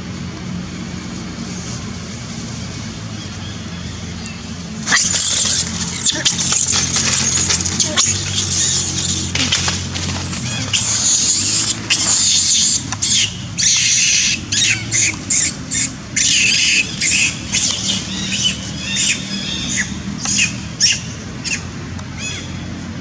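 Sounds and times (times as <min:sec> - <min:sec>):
macaque screaming: 0:04.8 - 0:22.5.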